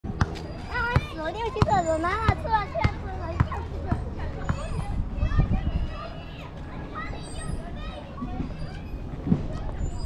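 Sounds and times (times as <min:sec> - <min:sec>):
children calling and shouting: 0:00.1 - 0:10.0.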